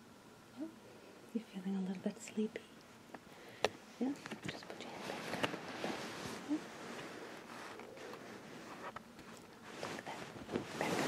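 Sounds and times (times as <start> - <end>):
soft whispering: 4.2 - 5.6, 6.2 - 8.8, 9.7 - 11.0.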